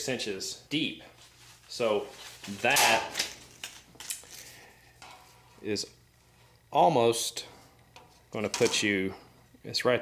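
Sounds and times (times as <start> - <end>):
tape measure clicks and rustles: 2.2 - 4.6.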